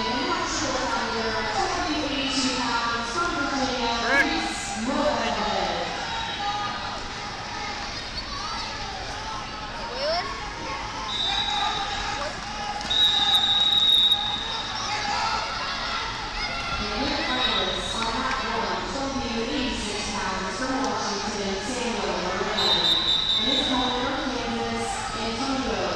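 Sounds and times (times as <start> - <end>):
crowd chatter in echoing gym: 0.0 - 25.9.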